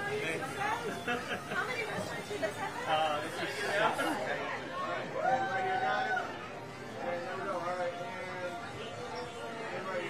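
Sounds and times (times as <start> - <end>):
people chatting: 0.0 - 5.0.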